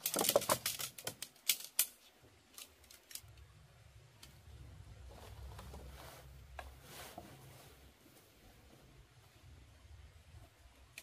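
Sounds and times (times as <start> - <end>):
tent pole sections clicking: 0.0 - 3.5.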